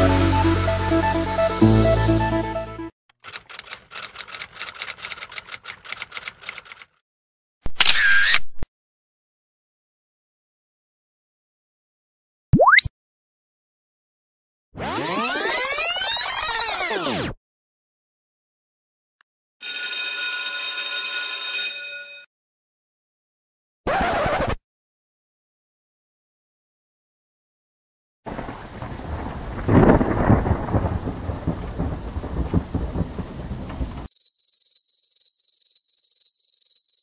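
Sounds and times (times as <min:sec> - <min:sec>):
typewriter keys clicking: 0:03.1 - 0:07.0
typewriter bell ring: 0:19.6 - 0:22.3.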